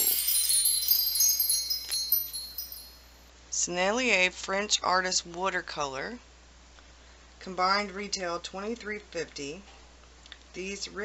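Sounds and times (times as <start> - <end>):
high tinkling chimes: 0.0 - 3.3.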